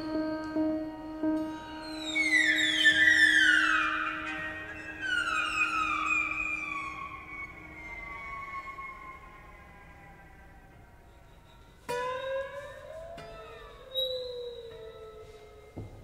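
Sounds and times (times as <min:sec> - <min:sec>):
piano strings ringing and sliding down: 0:00.0 - 0:16.0.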